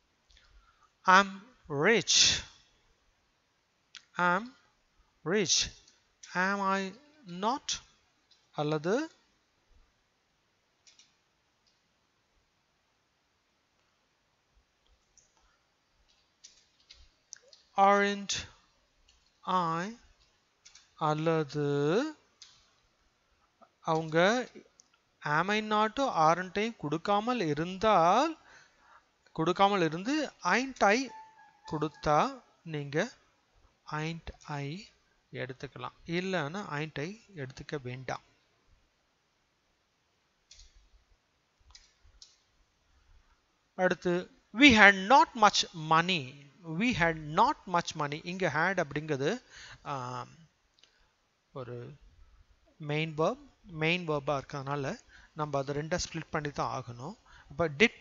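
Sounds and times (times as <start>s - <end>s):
faint computer clicks: 10.8s - 11.8s, 14.8s - 17.8s, 20.2s - 21.0s, 40.4s - 40.9s, 41.6s - 42.5s.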